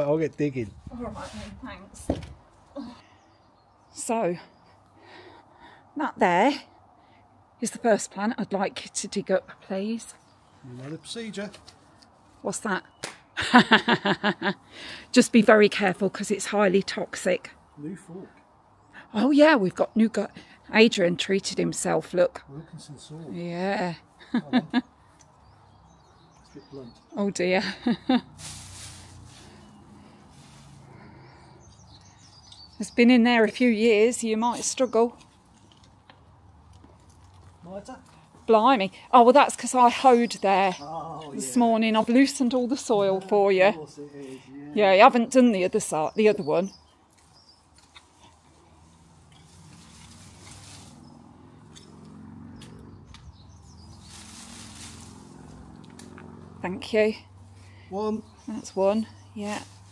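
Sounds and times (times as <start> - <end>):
bird chirps: 24.8 - 27.9, 31.2 - 35.4, 51.0 - 54.6
garden fork scraping soil: 28.3 - 29.7, 49.0 - 51.2, 53.9 - 55.4
garden fork digging in soil: 49.2 - 51.0.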